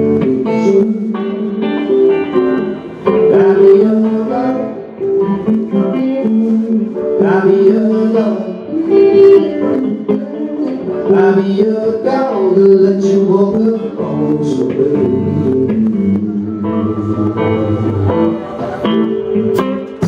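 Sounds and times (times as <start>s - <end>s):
band playing blues-rock: 0.0s - 20.0s.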